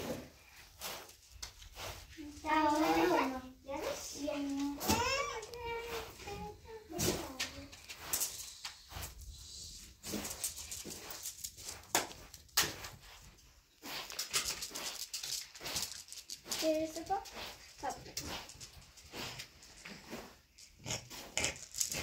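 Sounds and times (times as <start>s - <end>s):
broom sweeping carpet: 0.0s - 20.5s.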